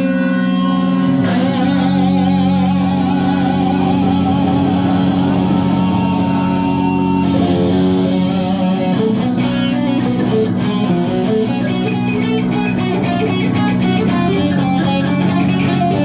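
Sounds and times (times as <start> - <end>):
electric guitar: 0.0 - 16.0
keyboards: 0.0 - 16.0.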